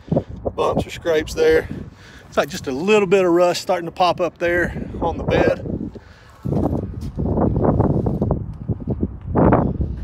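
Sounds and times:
wind buffeting microphone: 0.0 - 10.0
footsteps: 5.9 - 8.3.

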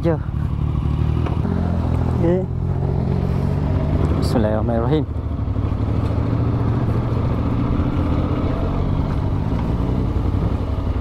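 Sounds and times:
motorcycle engine idling: 0.0 - 9.4.

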